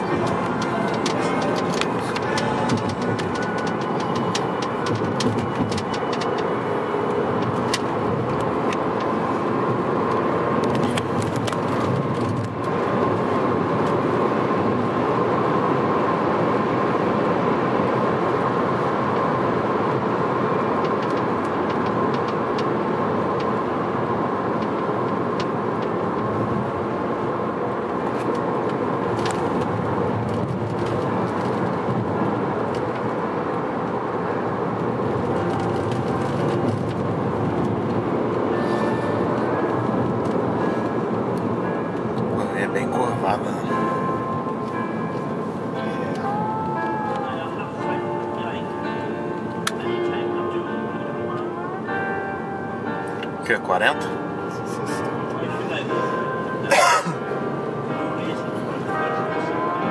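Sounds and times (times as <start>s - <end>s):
road and engine noise in car: 0.0s - 59.9s.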